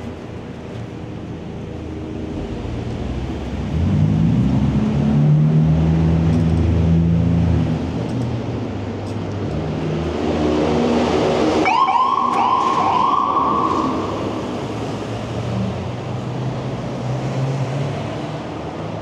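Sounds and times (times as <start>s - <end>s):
traffic rumble: 0.0s - 19.0s
wind: 0.0s - 19.0s
emergency siren yelps: 11.6s - 14.4s.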